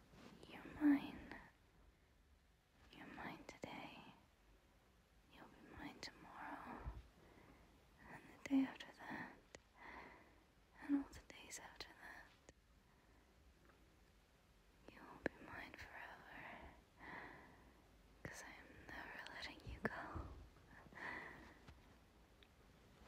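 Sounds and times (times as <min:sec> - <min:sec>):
woman whispering: 0:00.4 - 0:01.6, 0:02.9 - 0:04.2, 0:05.3 - 0:07.0, 0:08.0 - 0:09.7, 0:10.8 - 0:12.6, 0:14.8 - 0:16.8, 0:18.2 - 0:21.6.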